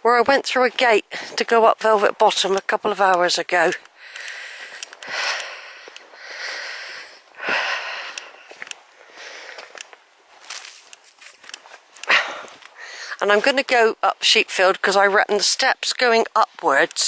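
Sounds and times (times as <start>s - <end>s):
footsteps clicking and rustling: 0.0s - 17.0s
person breathing close: 3.8s - 9.8s, 12.0s - 13.2s.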